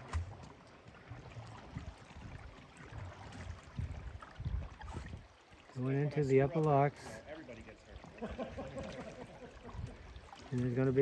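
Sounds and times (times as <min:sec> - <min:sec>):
paddles in calm water: 0:00.0 - 0:11.0.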